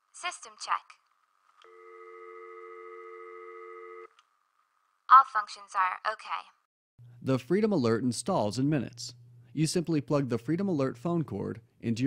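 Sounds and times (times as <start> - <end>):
telephone dial tone: 1.6 - 4.2.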